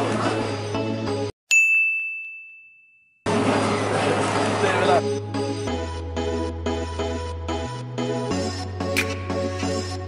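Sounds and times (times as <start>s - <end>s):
music: 0.0s - 1.3s, 3.3s - 10.0s
bell-like ding: 1.5s - 3.3s.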